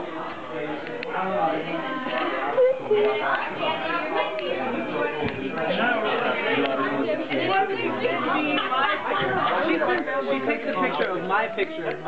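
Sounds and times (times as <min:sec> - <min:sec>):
babble of indistinct chatter: 0:00.0 - 0:12.0.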